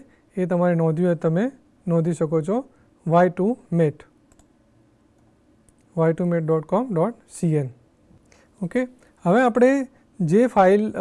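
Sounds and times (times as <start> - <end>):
computer mouse clicks: 4.3 - 5.9.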